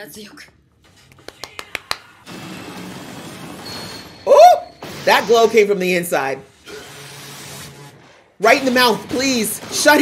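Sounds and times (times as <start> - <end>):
hands clapping quickly: 1.1 - 2.2.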